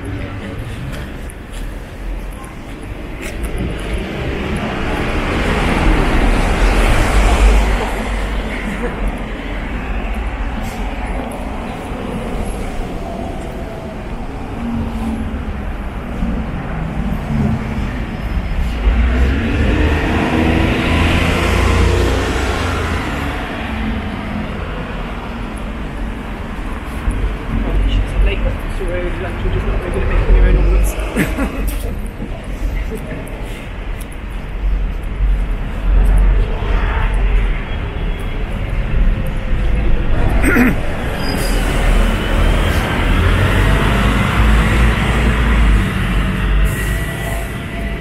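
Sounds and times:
vehicles passing: 0.0s - 48.0s.

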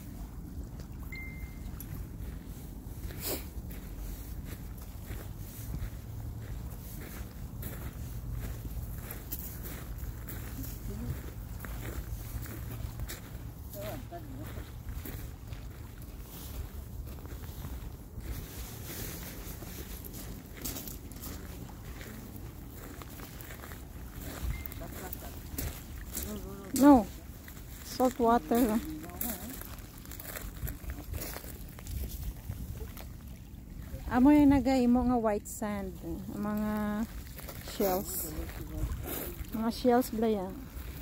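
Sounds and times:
footsteps on gravel: 1.8s - 33.2s, 36.2s - 41.0s
wind rumbling on microphone: 29.6s - 35.0s.

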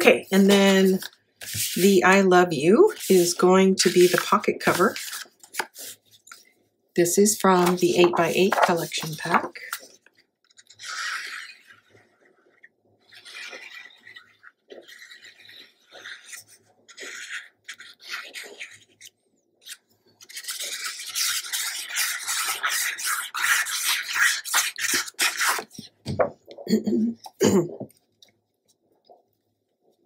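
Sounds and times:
glue bottle scratching on paper: 0.2s - 2.2s, 2.9s - 6.4s, 7.4s - 9.9s, 10.6s - 26.0s.

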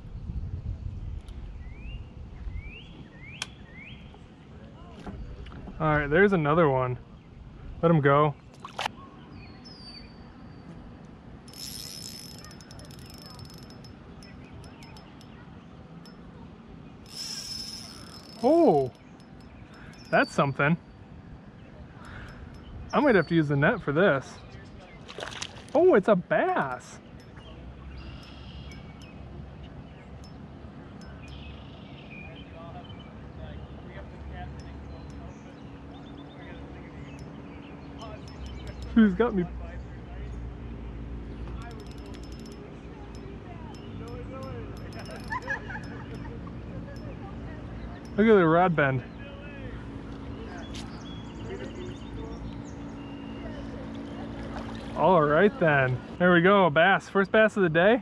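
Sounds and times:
low steady rumble: 0.0s - 57.9s
fishing reel clicks and rustles: 11.0s - 16.4s, 17.0s - 20.4s, 26.5s - 31.6s, 34.0s - 39.0s, 41.4s - 47.3s
fishing reel whirring and clicking: 11.4s - 15.3s, 17.0s - 20.3s, 41.5s - 46.3s.

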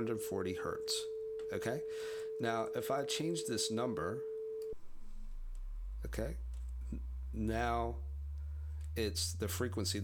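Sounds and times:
steady sine tone: 0.0s - 6.9s
deep sine hum: 0.0s - 10.0s.

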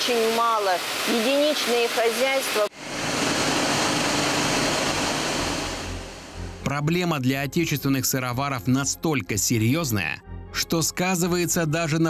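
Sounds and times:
factory machinery running: 2.8s - 6.5s.

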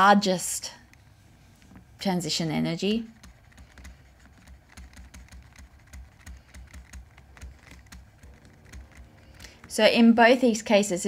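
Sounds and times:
stylus tapping tablet screen: 2.8s - 10.1s.

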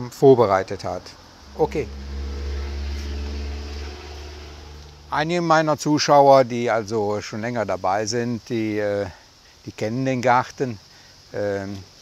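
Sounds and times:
low motor drone: 0.6s - 5.5s.

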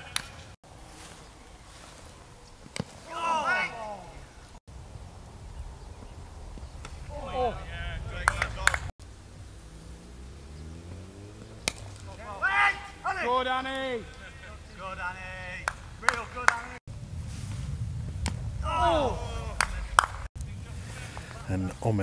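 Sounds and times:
distant players shouting: 2.7s - 4.6s, 5.3s - 16.8s, 18.2s - 22.0s
low steady rumble: 4.7s - 12.4s, 14.3s - 22.0s
bat hitting ball: 8.2s - 8.9s, 11.3s - 13.2s, 15.5s - 16.7s, 18.2s - 20.3s.

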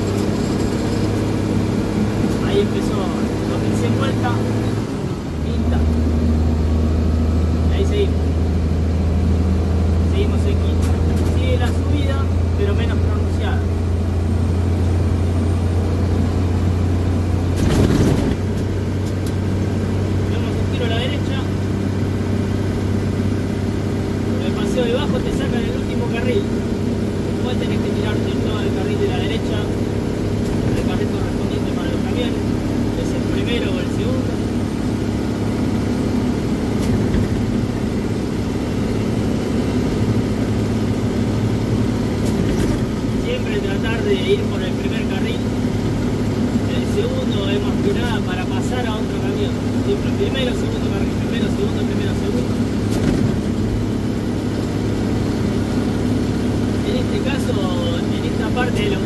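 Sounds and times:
diesel truck engine under load: 0.0s - 59.0s.

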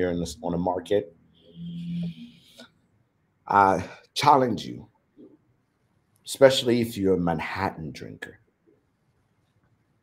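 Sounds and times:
person humming: 1.6s - 2.4s.

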